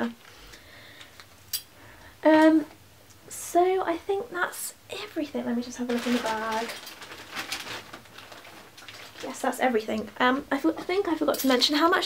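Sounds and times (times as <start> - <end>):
shopping bag rustling: 5.6 - 10.0.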